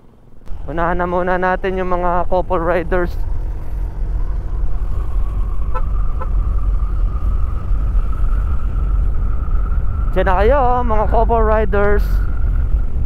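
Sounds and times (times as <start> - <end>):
scooter engine whine: 0.0 - 13.0
wind and road noise: 0.0 - 13.0.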